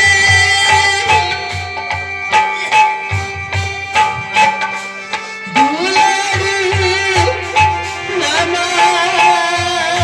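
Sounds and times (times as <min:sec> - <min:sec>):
steady low drum beat: 0:00.0 - 0:10.0.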